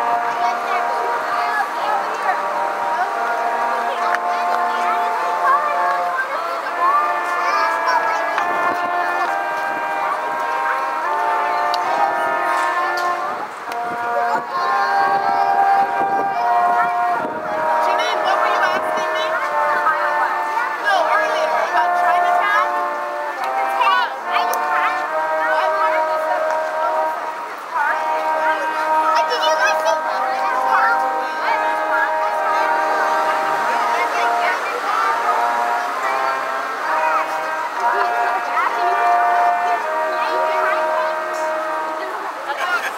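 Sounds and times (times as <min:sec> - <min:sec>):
brass quartet playing: 0:00.0 - 0:42.9.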